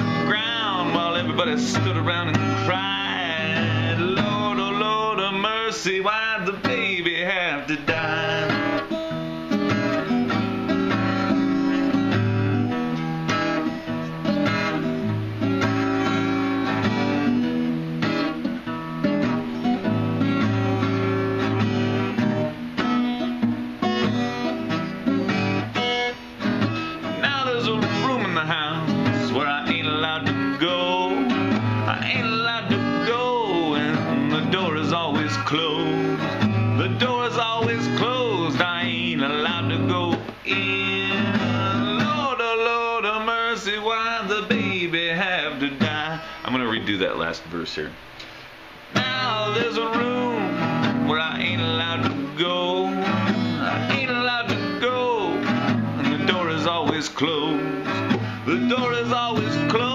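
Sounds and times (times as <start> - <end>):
man singing: 0.0 - 12.3, 26.6 - 47.2, 48.9 - 59.9
acoustic guitar strumming chords: 0.0 - 59.9.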